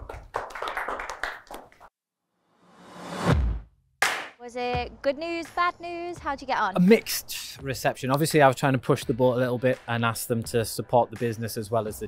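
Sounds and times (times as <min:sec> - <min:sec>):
people clapping: 0:00.0 - 0:01.9, 0:04.0 - 0:04.4.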